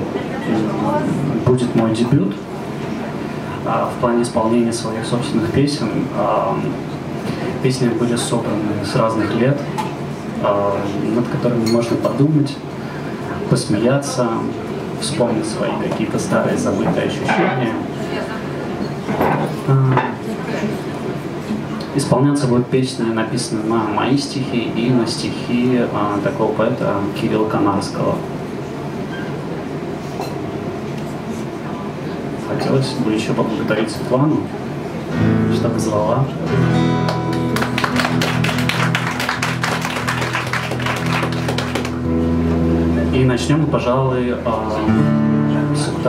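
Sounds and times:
man talking: 0:00.0 - 0:02.5, 0:03.5 - 0:06.8, 0:07.4 - 0:09.8, 0:10.4 - 0:12.7, 0:13.4 - 0:17.9, 0:19.6 - 0:20.2, 0:21.9 - 0:28.2, 0:32.4 - 0:34.6, 0:35.4 - 0:36.6, 0:42.9 - 0:46.0
soft acoustic guitar: 0:00.1 - 0:28.0, 0:32.4 - 0:46.0
tableware clinking: 0:17.3 - 0:17.7
audience clapping: 0:37.0 - 0:42.1.

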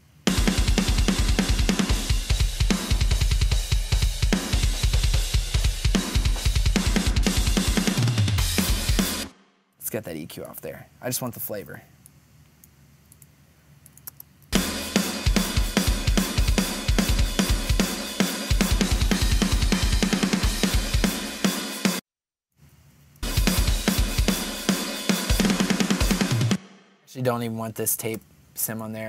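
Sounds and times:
cymbals and hi-hat wash: 0:00.0 - 0:09.3, 0:14.6 - 0:22.0, 0:23.2 - 0:26.6
kick drum strokes: 0:00.3 - 0:09.3, 0:14.6 - 0:21.6, 0:23.2 - 0:26.6.

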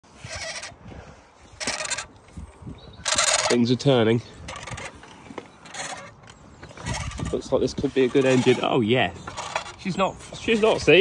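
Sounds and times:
engine turned over creaking: 0:00.2 - 0:00.8, 0:01.6 - 0:02.2, 0:03.0 - 0:11.0.

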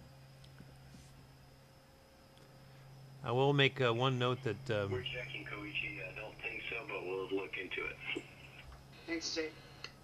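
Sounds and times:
steady low hum: 0:00.0 - 0:10.0
radio-like voice talking: 0:04.1 - 0:08.6.

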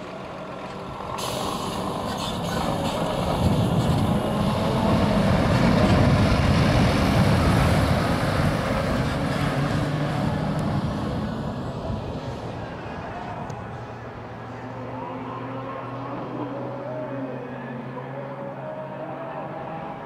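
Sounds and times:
tyre noise on road: 0:00.0 - 0:15.1
truck diesel engine driving past: 0:00.0 - 0:20.0
air hiss: 0:01.2 - 0:03.0.

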